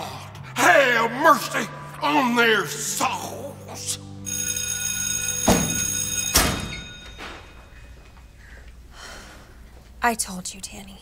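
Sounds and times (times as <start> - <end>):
electric bell ringing: 4.2 - 8.4.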